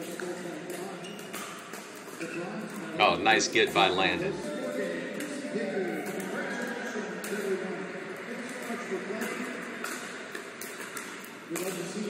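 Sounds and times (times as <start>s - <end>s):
hall noise: 3.0s - 4.5s.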